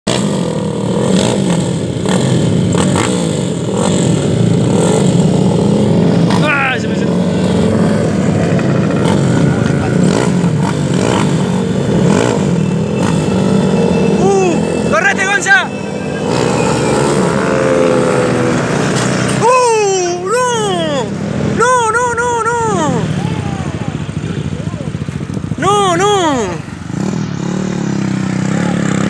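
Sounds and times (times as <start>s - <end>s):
motorcycle engines idling: 0.1s - 29.0s
high rising and falling call: 10.2s - 24.2s.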